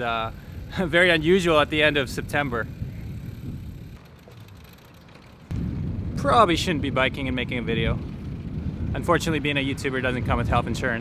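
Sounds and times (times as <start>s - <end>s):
wind buffeting microphone: 0.0s - 4.7s, 5.4s - 11.0s
street background: 0.0s - 11.0s.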